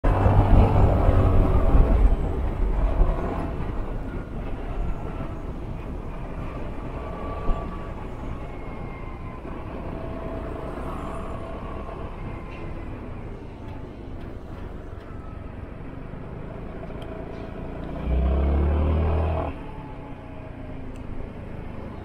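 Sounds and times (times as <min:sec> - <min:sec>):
wind rushing over microphone: 0:00.0 - 0:13.5
road noise: 0:00.0 - 0:22.0.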